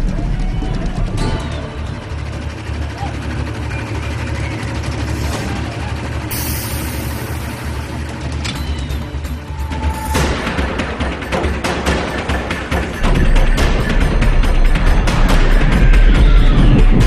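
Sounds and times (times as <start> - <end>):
roller coaster low rumble: 0.0 - 17.0.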